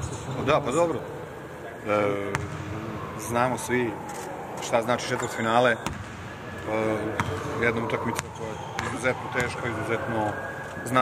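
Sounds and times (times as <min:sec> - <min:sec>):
basketball bouncing on hardwood: 0:05.8 - 0:06.1.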